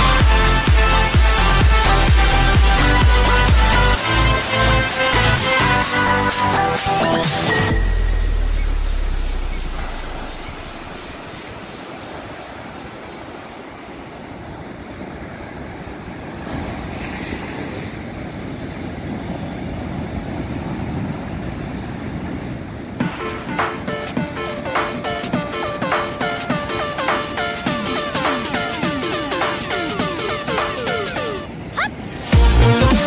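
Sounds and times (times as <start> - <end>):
background music: 0.0 - 10.4, 23.0 - 33.0
ocean surf breaking on beach: 9.2 - 32.3.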